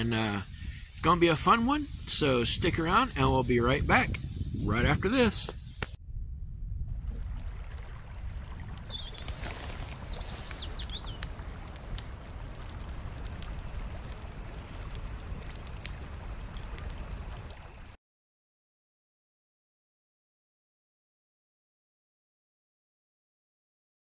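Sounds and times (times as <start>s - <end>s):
low rumbling noise: 1.9s - 17.6s
bird chirps: 8.2s - 11.2s.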